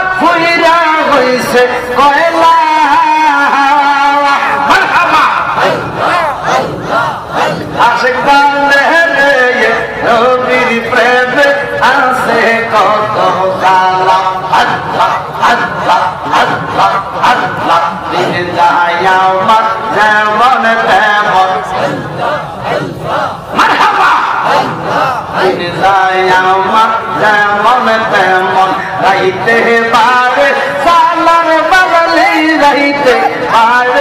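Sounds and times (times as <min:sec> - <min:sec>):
men chanting through a pa: 0:00.0 - 0:34.0.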